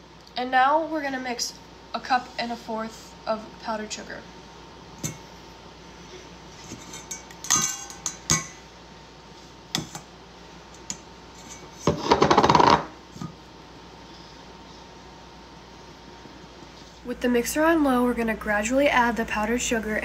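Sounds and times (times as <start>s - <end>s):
sieve clinking on metal bowl: 6.8s - 8.6s.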